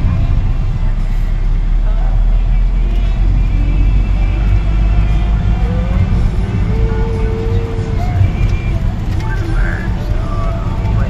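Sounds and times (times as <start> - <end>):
car engine and tyres rumbling: 0.0 - 11.0
faint music: 0.0 - 11.0
faint voices: 6.5 - 11.0.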